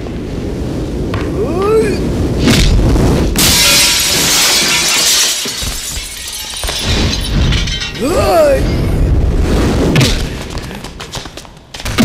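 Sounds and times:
glass shattering: 0:03.4 - 0:09.0.

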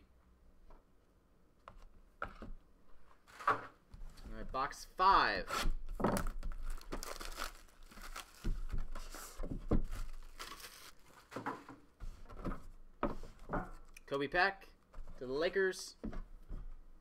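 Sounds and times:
plastic wrapping crinkling: 0:06.0 - 0:11.4.

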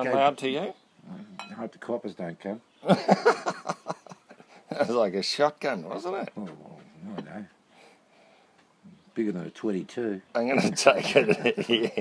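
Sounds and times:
men talking: 0:00.0 - 0:07.9, 0:08.8 - 0:12.0
men laughing: 0:02.8 - 0:05.1, 0:10.5 - 0:12.0.

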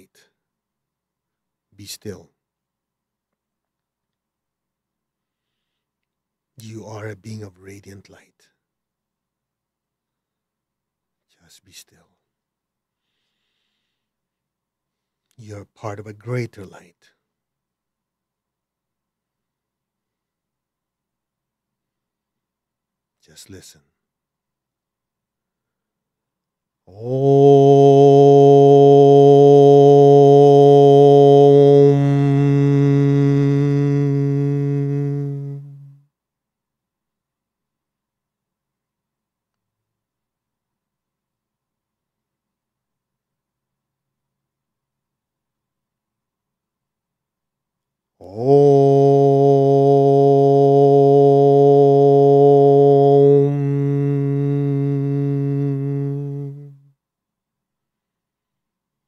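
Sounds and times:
man chanting om: 0:06.6 - 0:08.6, 0:15.4 - 0:17.2, 0:26.9 - 0:36.0, 0:48.2 - 0:56.9.

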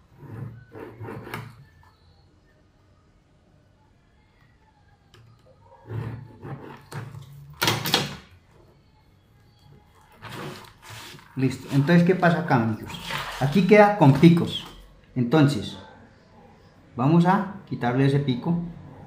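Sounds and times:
paper and set square scraping: 0:10.2 - 0:14.8.

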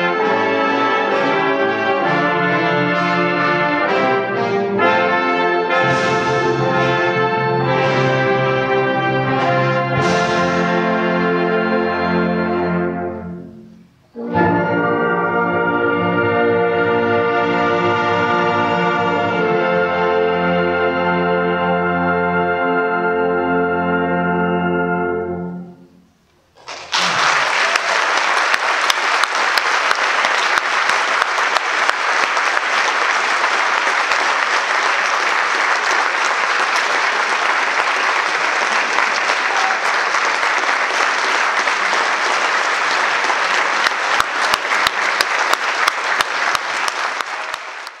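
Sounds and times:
audience applauding: 0:26.6 - 0:48.0.

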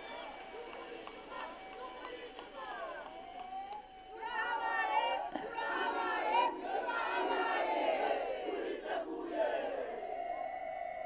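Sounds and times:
crowd cheering and shouting: 0:00.0 - 0:10.4.

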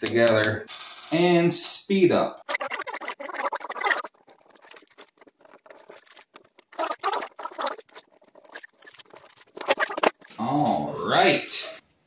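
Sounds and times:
tape rubbed down scratchy rustling: 0:02.4 - 0:10.8.

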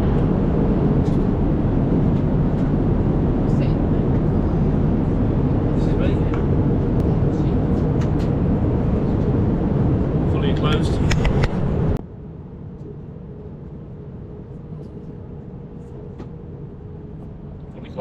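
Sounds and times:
airliner cabin rumble: 0:00.0 - 0:18.0.

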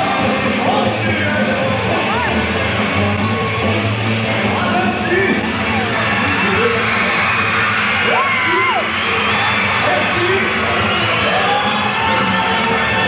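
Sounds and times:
band playing: 0:00.0 - 0:13.0
audience cheering and whooping: 0:01.9 - 0:13.0.

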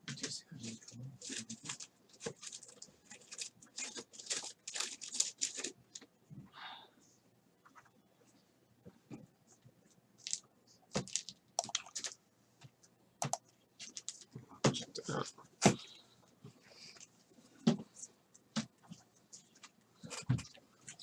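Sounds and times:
plastic packaging crinkling and tearing: 0:01.2 - 0:05.8.

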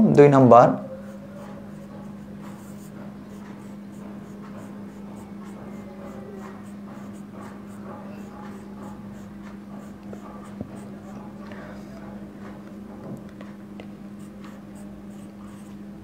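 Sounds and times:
steady low hum: 0:00.0 - 0:16.0
pen scratching on paper: 0:01.4 - 0:11.4, 0:14.2 - 0:15.8.

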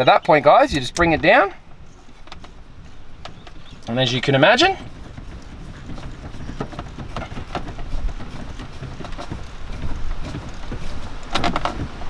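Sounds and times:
gear knob clicks and rustles: 0:00.0 - 0:12.0.

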